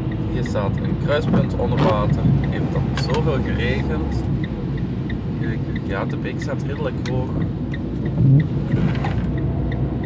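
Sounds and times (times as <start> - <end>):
engine and road rumble: 0.0 - 10.0
faint regular ticking: 0.0 - 10.0.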